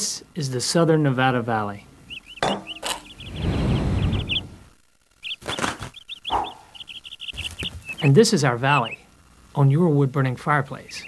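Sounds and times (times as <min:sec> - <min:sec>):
canary chirping: 0:01.7 - 0:09.2, 0:10.6 - 0:11.0.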